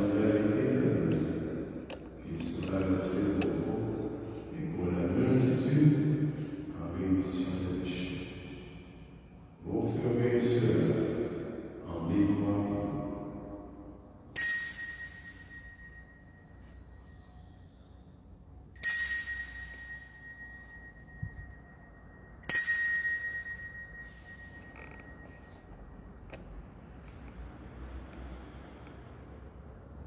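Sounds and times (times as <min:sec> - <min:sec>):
altar bell ringing: 0:14.3 - 0:17.7, 0:18.8 - 0:26.8.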